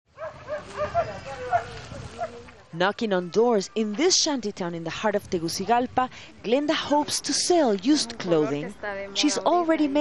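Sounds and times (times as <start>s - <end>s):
low street noise: 0.1s - 10.0s
dog barking in high yips: 0.2s - 2.3s.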